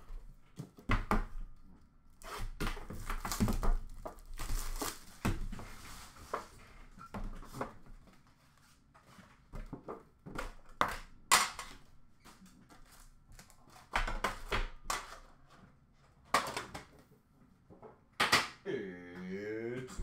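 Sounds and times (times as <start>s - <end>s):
foil wrappers crinkling: 3.0s - 5.3s.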